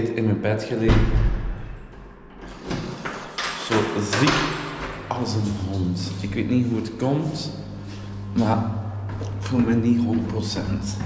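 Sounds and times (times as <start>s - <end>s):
man speaking: 3.6s - 4.5s, 5.1s - 7.7s, 8.3s - 11.0s.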